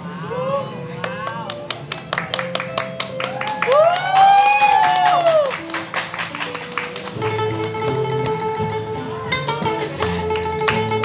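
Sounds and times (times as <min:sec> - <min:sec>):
plucked lute: 0:00.0 - 0:03.9, 0:05.2 - 0:11.0
acoustic guitar: 0:00.0 - 0:11.0
held notes: 0:04.9 - 0:11.0.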